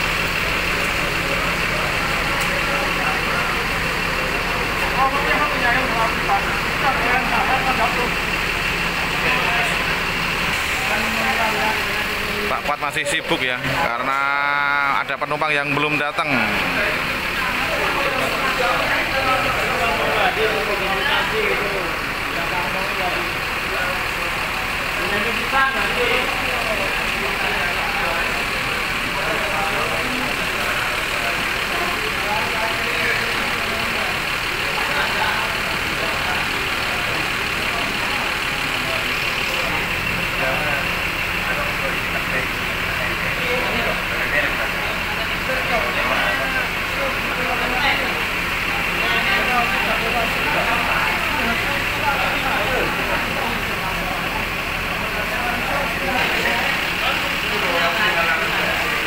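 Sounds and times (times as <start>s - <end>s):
bus engine idling: 0.0s - 59.0s
indistinct background voices: 0.0s - 59.0s.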